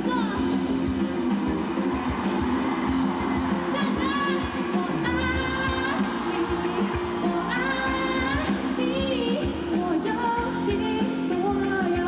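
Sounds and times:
steady drum beat: 0.4s - 10.8s
woman singing: 3.7s - 12.0s.

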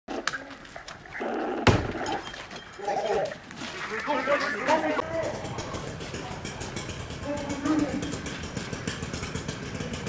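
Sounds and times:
raised voices: 2.8s - 6.0s.

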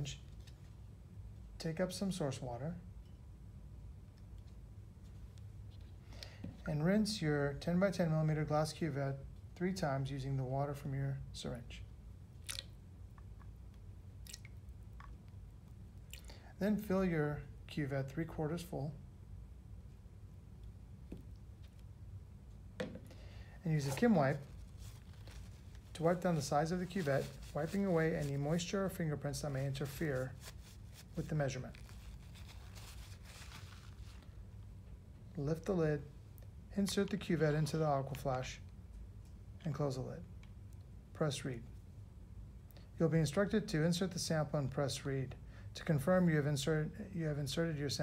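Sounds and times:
low room hum: 0.0s - 48.0s
tissue rubbing glass cuvette: 23.6s - 34.5s.

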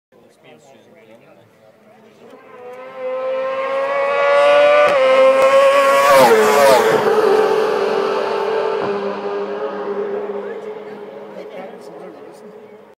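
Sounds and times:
racing sidecars passing at full throttle: 2.1s - 12.9s.

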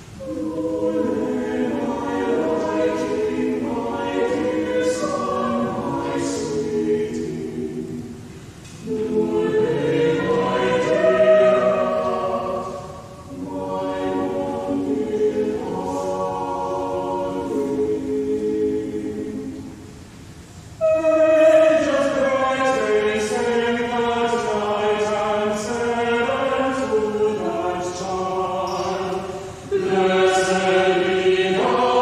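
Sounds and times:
church choir singing: 0.0s - 32.0s.

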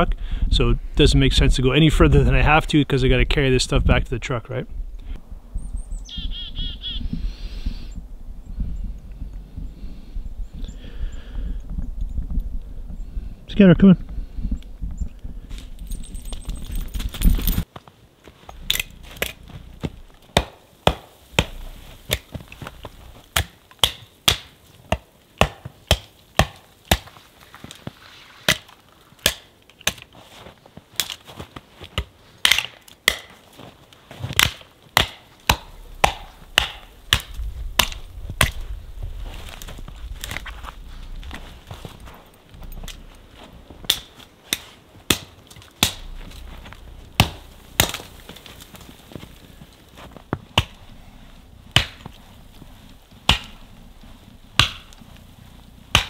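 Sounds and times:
hatchet chopping wood: 18.6s - 27.2s, 28.5s - 30.1s, 32.0s - 33.4s, 34.3s - 38.6s, 43.8s - 46.5s, 47.2s - 48.9s, 50.4s - 50.8s, 51.7s - 52.2s, 53.2s - 53.7s, 54.6s - 55.0s.

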